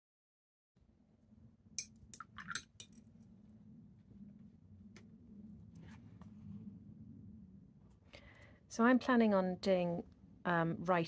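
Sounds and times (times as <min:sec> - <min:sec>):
faint room hum: 0:00.8 - 0:11.0
objects clinking on tabletop: 0:01.8 - 0:03.0.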